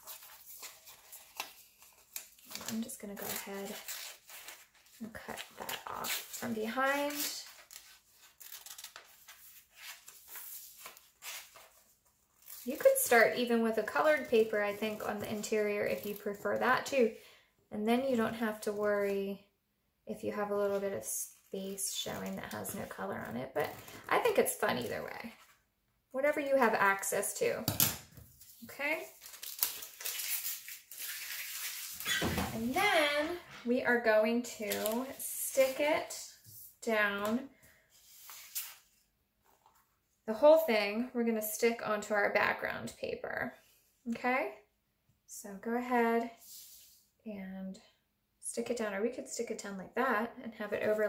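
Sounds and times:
paper rustling and sliding on table: 0:37.9 - 0:39.9, 0:46.4 - 0:47.1.

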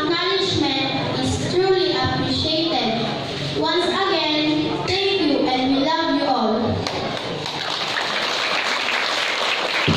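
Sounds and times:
many people clapping: 0:06.8 - 0:09.9.

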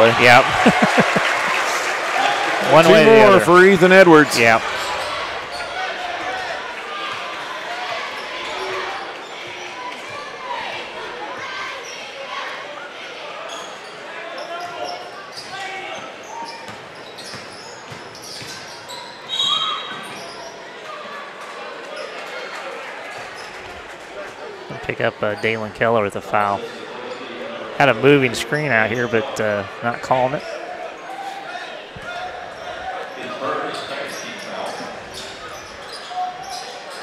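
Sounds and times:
crowd chatter: 0:00.0 - 0:37.0
referee's whistle: 0:19.3 - 0:20.1.

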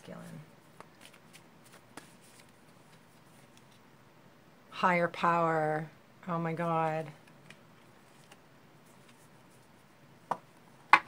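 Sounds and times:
cards being shuffled: 0:00.2 - 0:03.9, 0:07.0 - 0:09.7.

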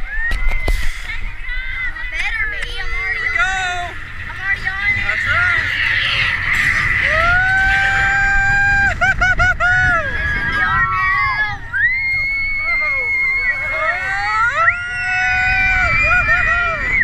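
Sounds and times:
rumble of wind and train: 0:00.0 - 0:17.0
riders cheering and yelling: 0:01.4 - 0:17.0.

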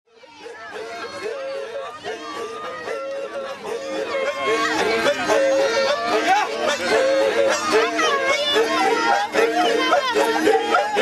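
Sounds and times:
people's voices overlapping: 0:00.1 - 0:11.0.

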